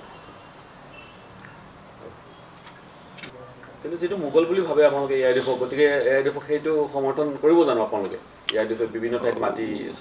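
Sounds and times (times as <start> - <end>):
soft mouth clicks: 1.4 - 1.6
man speaking: 3.3 - 10.0.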